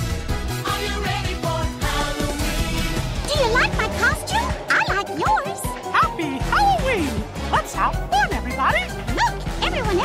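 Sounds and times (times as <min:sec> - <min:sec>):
upbeat parade music: 0:00.0 - 0:10.0.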